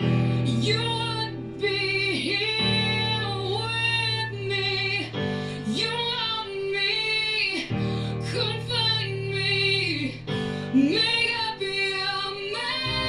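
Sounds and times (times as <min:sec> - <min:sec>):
woman singing: 0:00.0 - 0:13.0.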